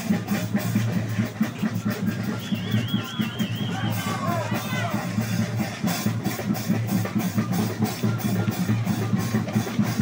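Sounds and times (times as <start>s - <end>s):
parade band drums and percussion: 0.0s - 10.0s.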